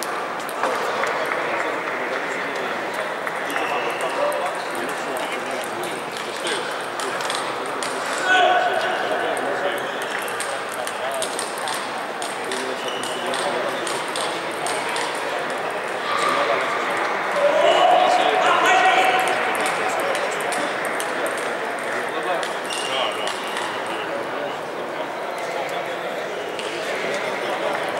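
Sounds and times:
chatter of voices: 0.0 - 27.9
table tennis balls clicking: 2.2 - 8.2, 9.3 - 15.7, 19.1 - 23.8.

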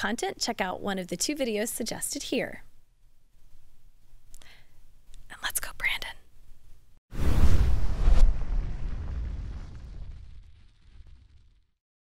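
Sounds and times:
woman whispering: 5.2 - 6.3.

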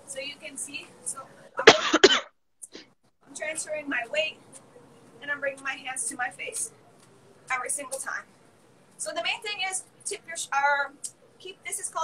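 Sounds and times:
woman coughing: 1.6 - 2.3.

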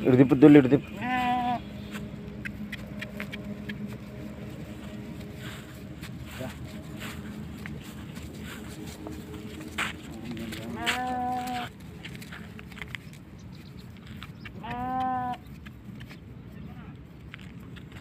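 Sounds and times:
farm animal call: 0.0 - 12.8, 14.2 - 15.5
light knocks and steps: 1.7 - 16.4.

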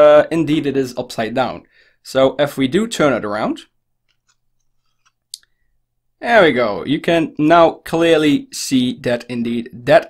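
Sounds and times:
trading cards handled: 4.0 - 5.3.

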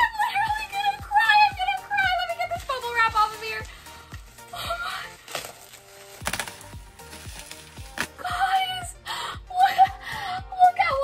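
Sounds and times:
bubble wrap crinkling and crackling: 0.0 - 8.8
background music with steady beat: 0.0 - 11.0.

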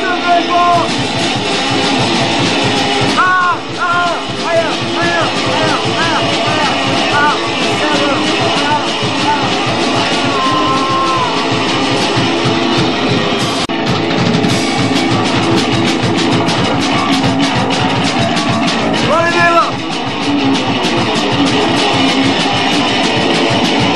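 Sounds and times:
vocals: 0.0 - 0.9, 3.2 - 12.0
fast even drumming: 0.0 - 23.9
punk rock band playing: 0.0 - 23.9.

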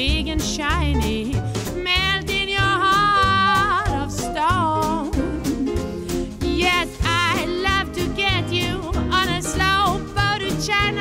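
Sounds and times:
small jazz band: 0.0 - 11.0
upright bass: 0.0 - 11.0
woman singing jazz with vibrato: 0.0 - 11.0.

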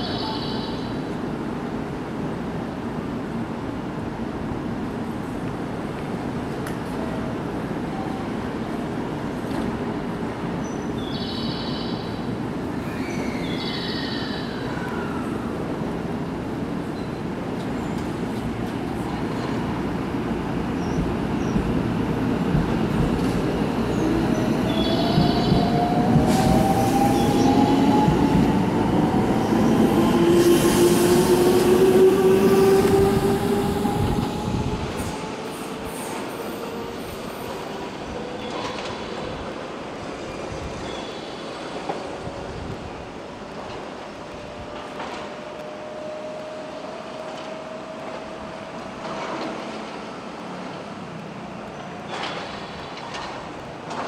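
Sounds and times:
train wheels rumbling: 15.6 - 54.0.

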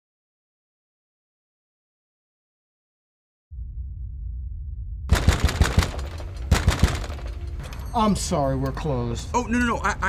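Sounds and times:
low rumbling drone: 3.5 - 8.0.

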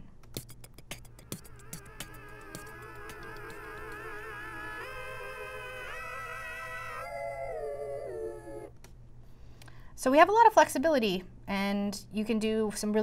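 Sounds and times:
wavering vocal-like tone: 0.6 - 8.7.

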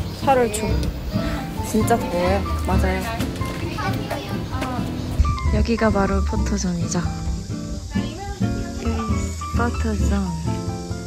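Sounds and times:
bossa lounge music: 0.0 - 11.0
woman's voice: 5.5 - 7.3, 7.9 - 10.5.

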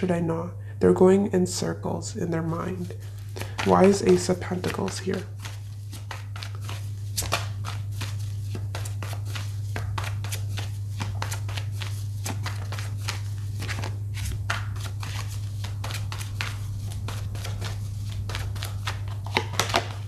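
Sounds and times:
steady low hum: 0.0 - 20.0
cards being shuffled: 2.4 - 20.0.

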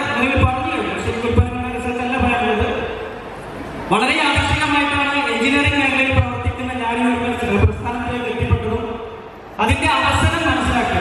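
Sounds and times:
man speaking over loudspeakers: 0.0 - 3.2, 3.9 - 11.0.

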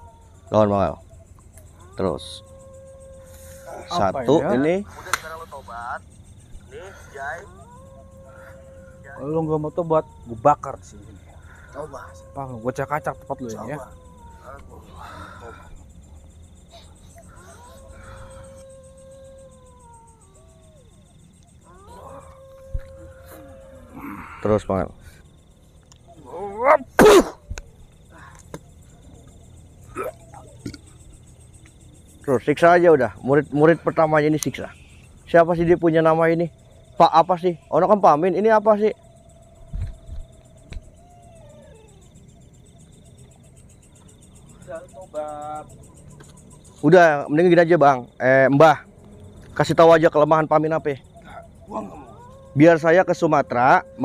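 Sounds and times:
drawn-out howls: 0.0 - 54.0
night insects trilling: 0.0 - 54.0.

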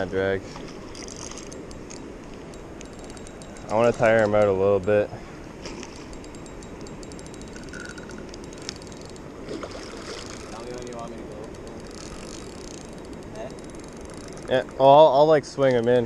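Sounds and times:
fishing reel drag clicking: 0.9 - 5.0, 5.7 - 14.6
river water rushing: 5.1 - 14.9.

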